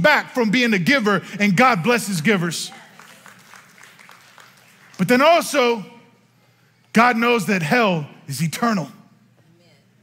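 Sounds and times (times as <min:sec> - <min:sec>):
congregation clapping: 0:02.0 - 0:05.7.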